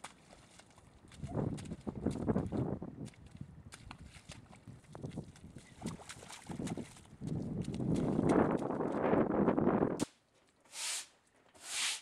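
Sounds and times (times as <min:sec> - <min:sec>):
footsteps squelching through mud: 0:00.0 - 0:09.4.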